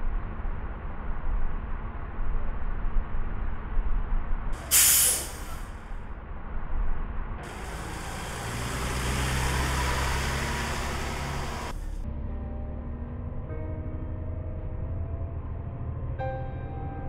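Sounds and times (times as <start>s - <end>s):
low rumble: 0.0s - 17.0s
bus engine humming: 4.4s - 16.3s
air brakes hissing: 4.6s - 5.9s, 7.4s - 12.0s.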